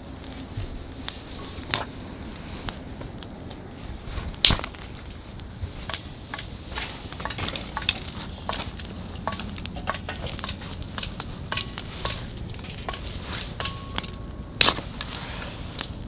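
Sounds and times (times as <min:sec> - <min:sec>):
wood fire crackling and popping: 0:00.0 - 0:16.0.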